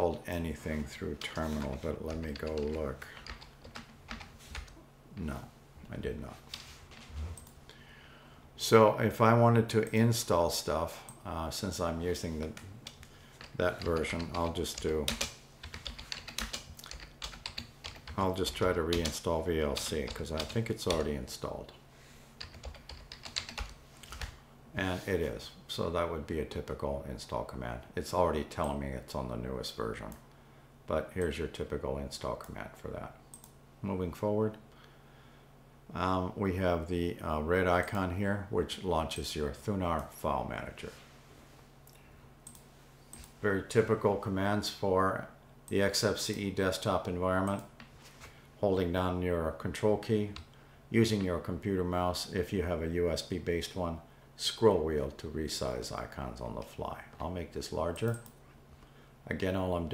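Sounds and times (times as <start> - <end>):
low steady hum: 0.0 - 59.9
computer keyboard typing: 1.2 - 4.8, 12.6 - 21.1, 22.4 - 24.4.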